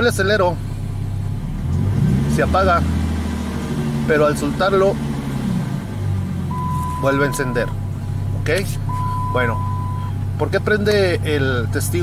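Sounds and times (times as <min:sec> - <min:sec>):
dashboard warning chime: 0:06.5 - 0:07.8, 0:08.9 - 0:10.2.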